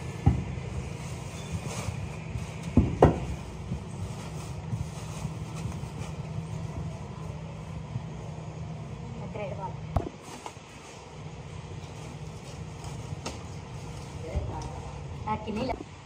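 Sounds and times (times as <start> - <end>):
steady low hum: 0.0 - 16.0
plastic sheeting rustling: 0.6 - 7.4.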